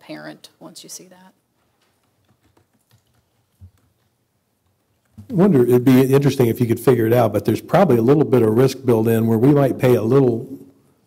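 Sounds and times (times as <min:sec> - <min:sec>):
computer keyboard clicks: 0:02.0 - 0:04.1.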